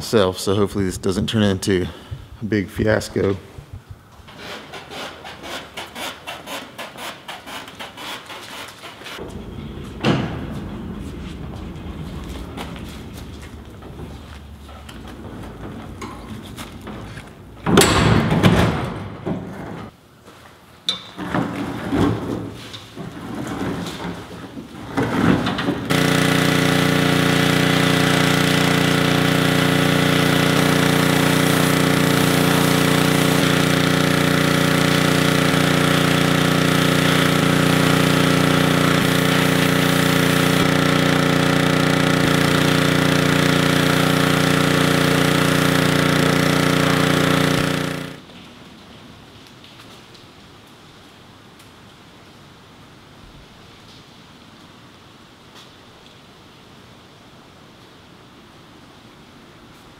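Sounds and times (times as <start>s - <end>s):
pressure washer droning: 4.3s - 18.4s, 25.5s - 48.2s
rattles and knocks: 9.2s - 19.9s
water jet hissing: 25.9s - 48.0s.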